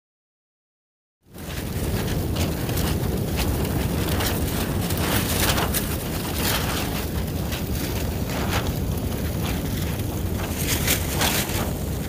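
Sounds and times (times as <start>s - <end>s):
wind buffeting microphone: 1.2s - 12.0s.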